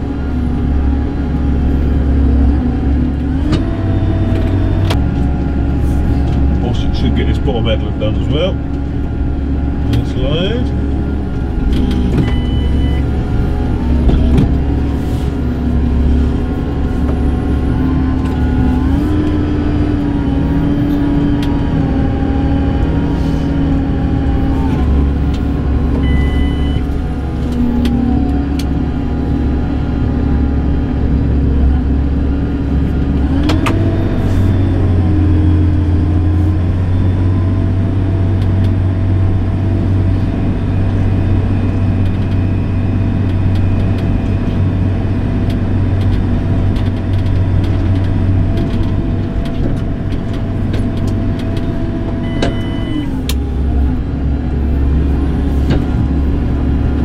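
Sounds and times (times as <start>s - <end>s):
tractor diesel engine running: 0.0s - 57.0s.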